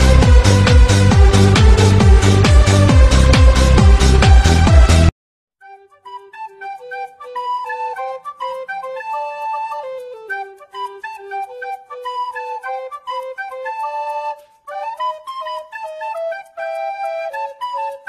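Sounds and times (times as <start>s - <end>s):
instrumental background music: 0.0s - 18.0s.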